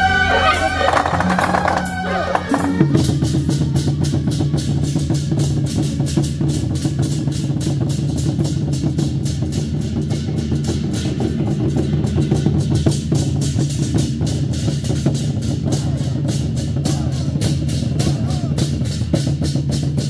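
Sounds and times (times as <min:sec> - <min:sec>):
hand cymbals clashing: 0:00.0 - 0:20.0
large drums beating fast: 0:00.0 - 0:20.0.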